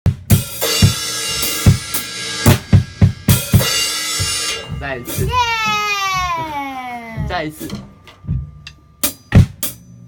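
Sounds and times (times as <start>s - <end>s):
bass drum hits: 0.1s - 8.6s
cymbals ringing: 3.3s - 5.8s.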